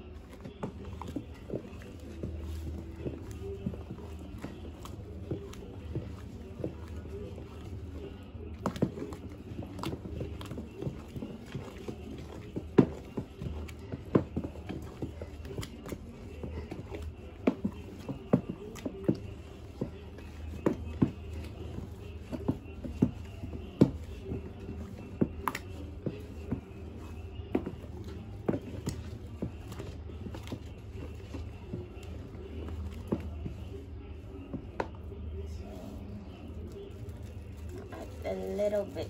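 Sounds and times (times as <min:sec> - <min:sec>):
stick stirring foamy soap: 0:00.0 - 0:39.0.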